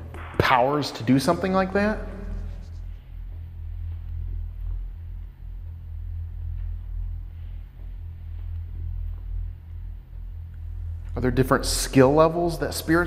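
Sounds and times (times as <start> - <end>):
low steady drone: 0.0 - 13.0.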